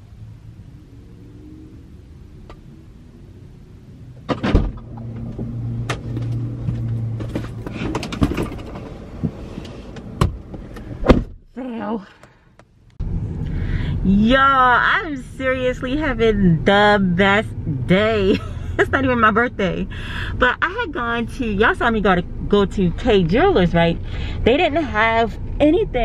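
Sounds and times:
car door shutting: 4.2 - 11.4
rustling inside car: 4.2 - 11.4.

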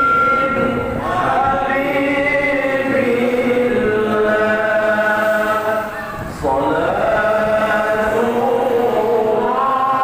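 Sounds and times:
person chanting devotional song: 0.0 - 10.0.

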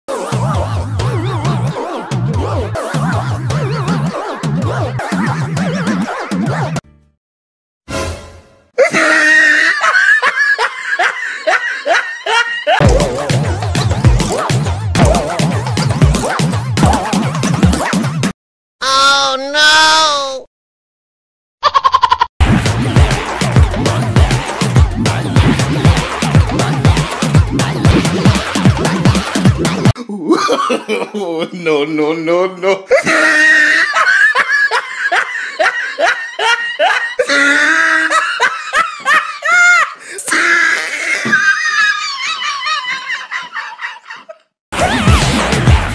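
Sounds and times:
high-pitched laughter: 8.8 - 13.6, 21.6 - 22.3, 32.8 - 45.0.

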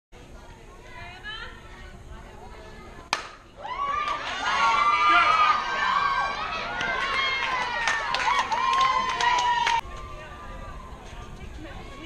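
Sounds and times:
bat cracking against ball: 3.1 - 3.4
people clapping: 3.1 - 3.4, 4.0 - 9.8
crowd cheering and shouting: 3.6 - 12.0.

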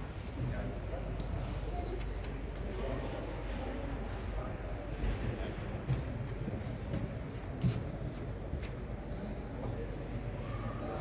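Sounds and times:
indistinct voices in a hall: 0.0 - 11.0.

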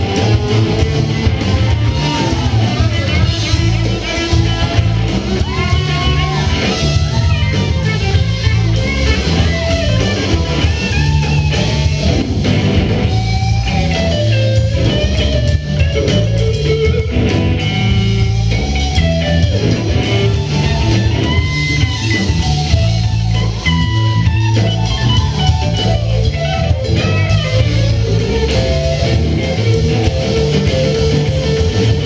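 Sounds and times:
bass guitar: 0.0 - 32.0
drums: 0.0 - 32.0
electric guitar melody: 0.0 - 32.0.

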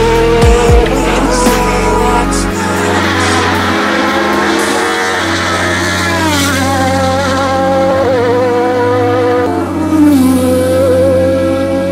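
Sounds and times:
background music: 0.0 - 11.9
race car engine high revs: 0.0 - 11.9.

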